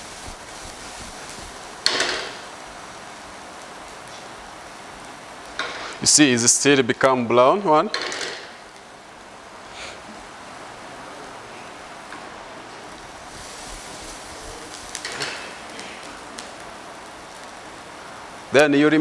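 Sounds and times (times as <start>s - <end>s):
vegetables sizzling in a wok: 0.0s - 6.9s, 8.0s - 19.0s.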